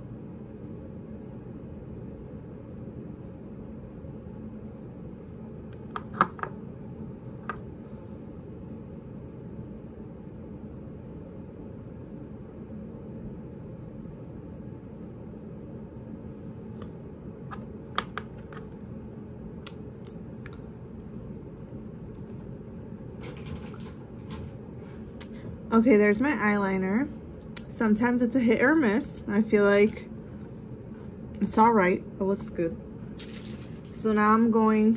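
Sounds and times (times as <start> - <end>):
low room hum: 0.0 - 34.9
makeup items clicking and tapping: 5.8 - 6.6, 17.5 - 18.7.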